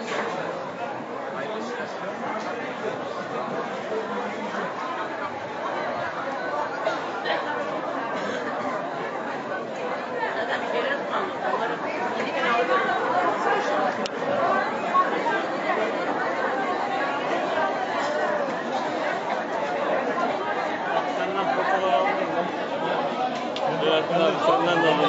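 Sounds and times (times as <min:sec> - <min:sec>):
chatter of many people: 0:00.0 - 0:25.0.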